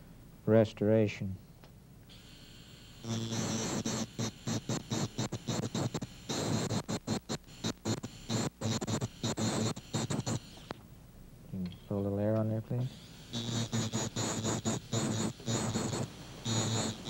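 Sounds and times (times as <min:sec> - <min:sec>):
dental motor whine: 0:02.1 - 0:10.8, 0:12.7 - 0:17.0
dental disc grinding porcelain: 0:13.4 - 0:17.0.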